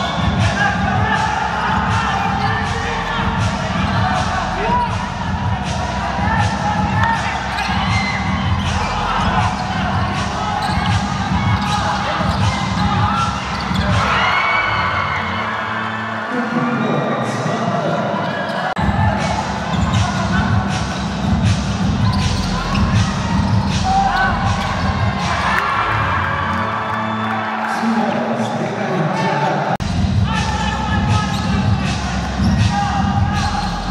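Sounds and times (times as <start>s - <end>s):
players calling out: 0.0s - 16.2s.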